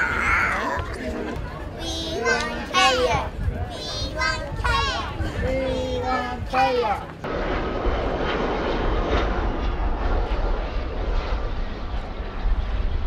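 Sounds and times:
jet engine rumble: 0.0s - 13.0s.

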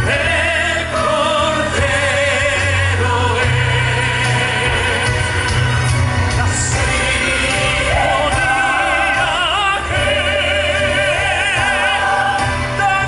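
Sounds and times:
mixed choir singing a hymn: 0.0s - 13.0s
sustained instrumental accompaniment: 0.0s - 13.0s.

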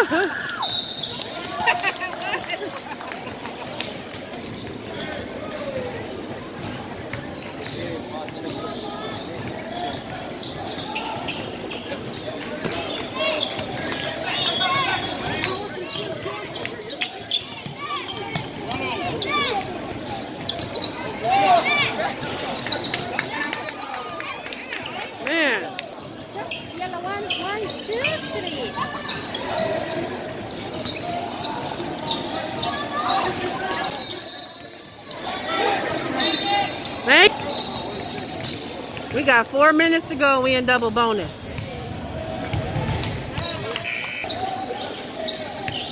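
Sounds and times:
spectators talking and calling out: 0.0s - 45.9s.

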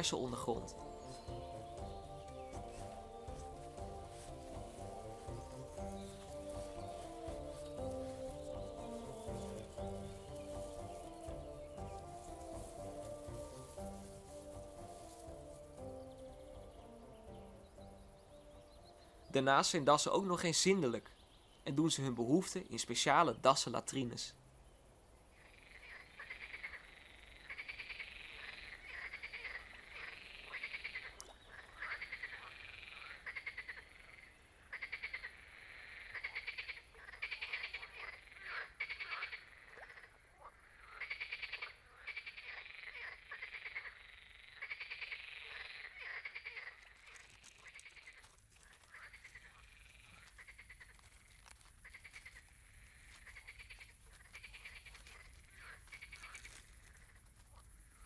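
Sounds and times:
frogs croaking: 0.0s - 58.0s.

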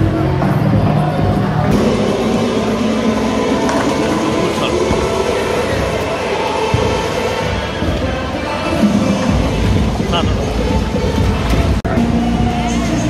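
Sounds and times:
people chattering: 0.0s - 13.0s
bowling ball rolling: 0.5s - 6.1s.

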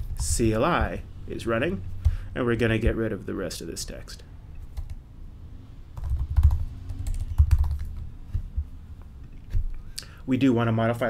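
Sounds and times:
typing on computer keyboard: 6.0s - 8.6s.

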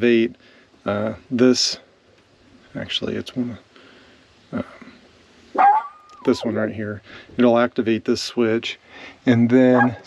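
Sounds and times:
dog whining: 5.6s - 6.6s, 9.7s - 10.0s.

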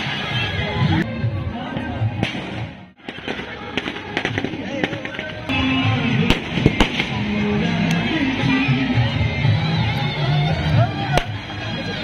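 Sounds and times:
music: 0.0s - 12.0s
people's voices: 0.0s - 12.0s
firecrackers popping: 2.2s - 5.6s, 6.2s - 7.4s.

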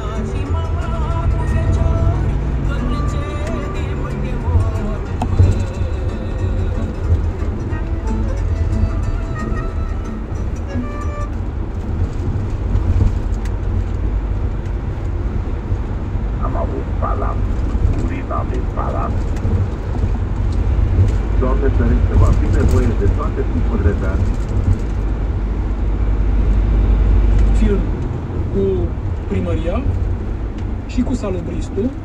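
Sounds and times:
engine and tyres droning: 0.0s - 32.0s
radio talk: 16.4s - 19.2s, 21.4s - 24.3s.

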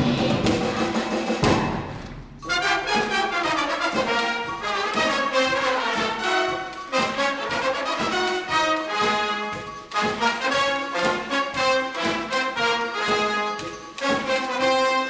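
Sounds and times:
trumpets: 0.0s - 15.0s
wind band playing: 2.4s - 15.0s.

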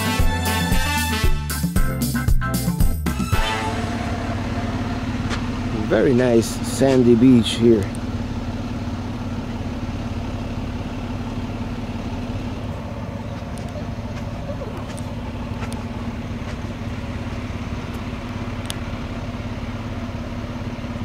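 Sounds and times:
vehicle engine low hum: 2.5s - 21.0s.

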